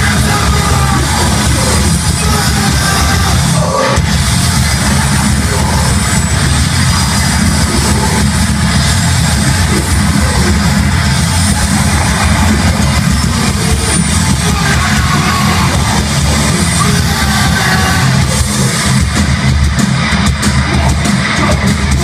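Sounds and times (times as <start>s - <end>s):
bass guitar: 0.0s - 22.0s
distorted electric guitar: 0.0s - 22.0s
drums: 0.0s - 22.0s.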